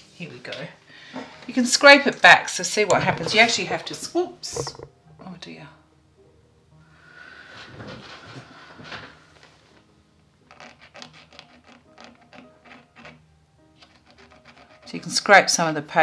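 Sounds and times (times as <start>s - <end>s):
soft background music: 0.0s - 16.0s
pick scratching paper: 10.5s - 13.2s, 13.8s - 15.2s.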